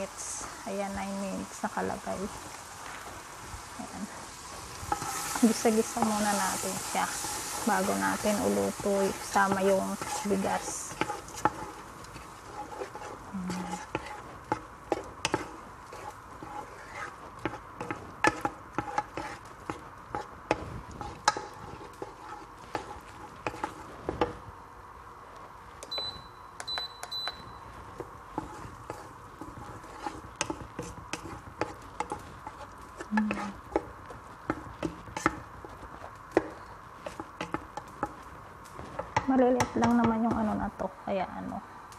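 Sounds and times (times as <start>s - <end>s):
utensil scraping vegetables in pot: 0.0s - 24.4s, 27.6s - 40.7s
steady low hiss: 0.0s - 41.9s
short high beeps: 25.9s - 27.6s.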